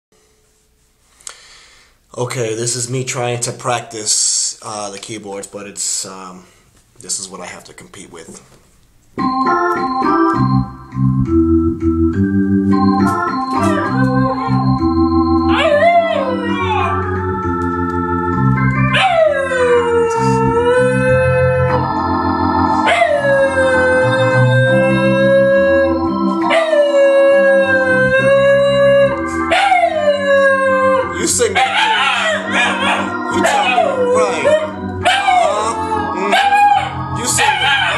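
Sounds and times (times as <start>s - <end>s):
electronic keyboard chords: 9.2s - 37.9s
dog howling: 15.5s - 17.0s, 18.8s - 21.8s, 22.8s - 37.9s.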